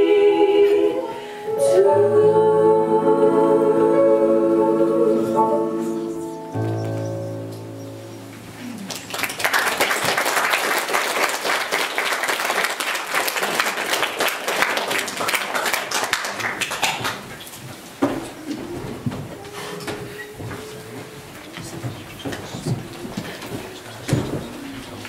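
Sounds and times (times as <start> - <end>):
audience applauding: 8.6 - 17.6.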